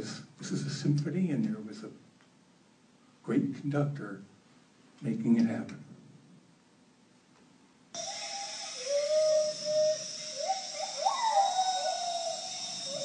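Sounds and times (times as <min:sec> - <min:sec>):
gibbon whooping calls: 0:08.0 - 0:13.0
high drone of insects: 0:08.0 - 0:13.0.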